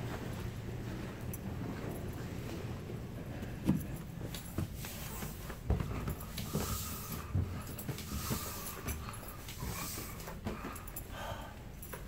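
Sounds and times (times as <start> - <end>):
footsteps on carpeted stairs: 0.0 - 12.0.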